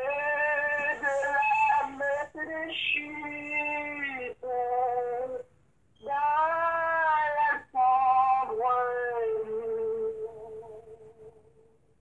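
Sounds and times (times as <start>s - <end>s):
person singing long notes: 0.0s - 11.7s.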